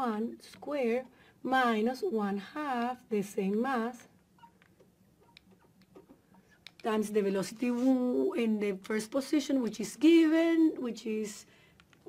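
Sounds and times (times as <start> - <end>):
marker squeaking on glass: 4.4 - 4.6.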